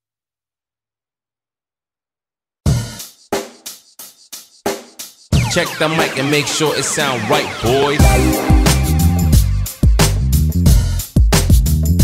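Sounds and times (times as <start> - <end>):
drum kit music: 2.7 - 12.0.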